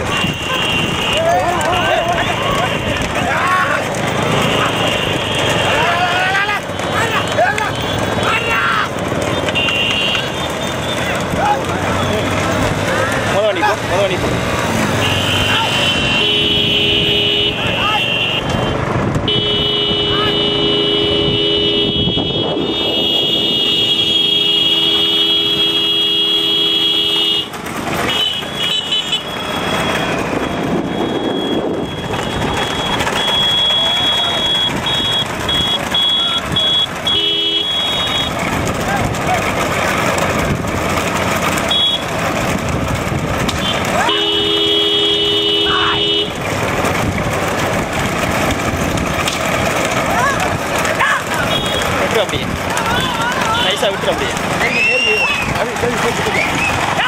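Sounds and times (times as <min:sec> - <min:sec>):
motorcycle horn blasts: 0:00.0 - 0:01.4, 0:09.4 - 0:10.5, 0:15.0 - 0:38.4, 0:41.6 - 0:42.2, 0:43.5 - 0:46.5, 0:51.4 - 0:52.0
on-off horn beeping: 0:00.0 - 0:03.2, 0:04.2 - 0:08.5, 0:09.1 - 0:11.3, 0:14.8 - 0:38.8, 0:40.9 - 0:47.2, 0:51.2 - 0:54.2
people shouting: 0:00.0 - 0:13.9, 0:15.0 - 0:18.5, 0:32.0 - 0:39.6, 0:43.6 - 0:46.4, 0:49.8 - 0:57.0
motorcycle engines: 0:00.0 - 0:57.0.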